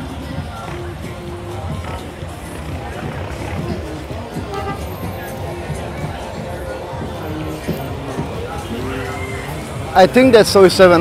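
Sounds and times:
music with heavy bass: 0.0 - 11.0
people's voices: 0.0 - 11.0
road traffic passing: 0.0 - 11.0.

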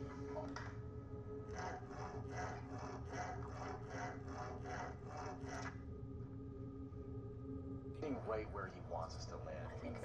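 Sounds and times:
steady low hum: 0.0 - 10.0
rhythmic scrubbing strokes: 1.5 - 5.8.

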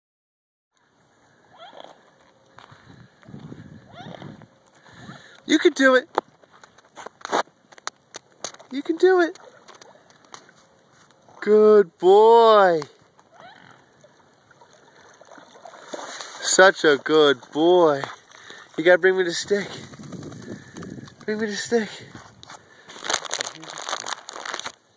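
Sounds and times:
short gliding animal calls: 1.2 - 2.2, 3.7 - 5.3, 13.3 - 14.0
water sloshing: 8.1 - 11.6, 12.9 - 24.7.

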